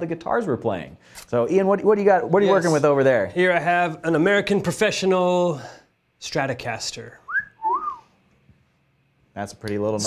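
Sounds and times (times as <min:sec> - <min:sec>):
person whistling admiringly: 0:07.3 - 0:08.2.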